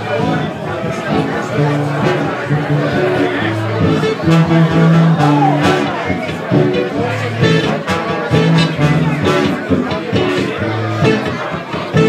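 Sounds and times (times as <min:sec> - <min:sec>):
crowd chatter: 0:00.0 - 0:12.0
live band playing: 0:00.0 - 0:12.0
low brass notes: 0:01.2 - 0:09.6.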